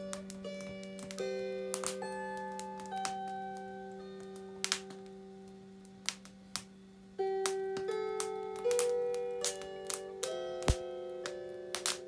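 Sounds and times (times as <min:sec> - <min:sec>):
firewood crackling: 0:00.0 - 0:12.0.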